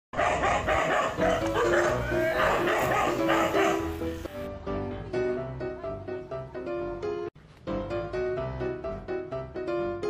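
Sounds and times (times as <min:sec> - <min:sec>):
dog barking: 0:00.2 - 0:03.9
background music: 0:00.2 - 0:10.0.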